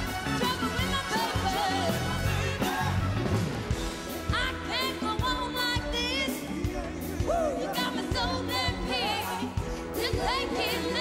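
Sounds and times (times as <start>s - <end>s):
orchestra playing: 0.0s - 8.2s
drum beat: 0.0s - 11.0s
woman singing with vibrato: 0.3s - 3.0s, 4.2s - 11.0s.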